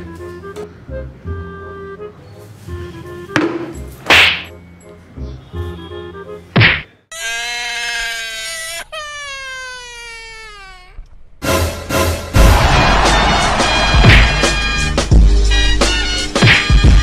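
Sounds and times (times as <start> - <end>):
light background music: 0.0 - 6.8
sharp loud whacks: 3.4 - 4.5, 6.6 - 6.9, 13.9 - 14.6, 16.4 - 16.9.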